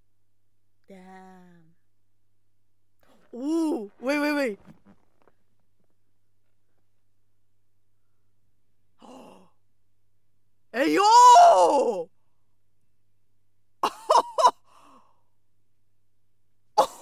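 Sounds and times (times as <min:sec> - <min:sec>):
woman exclaiming ooh: 0:03.4 - 0:03.9, 0:10.8 - 0:12.1.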